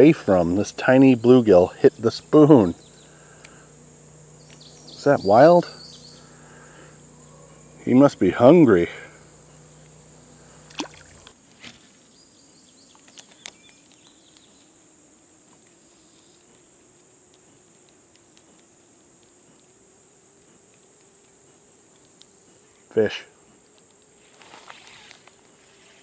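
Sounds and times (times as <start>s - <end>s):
crickets chirping: 0.0s - 26.0s.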